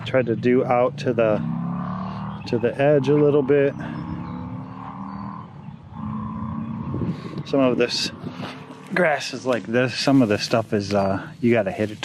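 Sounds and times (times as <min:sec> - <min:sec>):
engine hum: 0:00.0 - 0:12.0.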